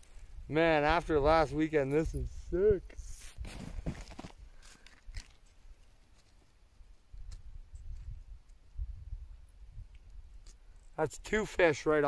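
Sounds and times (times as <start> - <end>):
wind rumble on microphone: 0.2 - 4.0, 7.1 - 10.4
rustling and crunching in snow: 3.0 - 6.5.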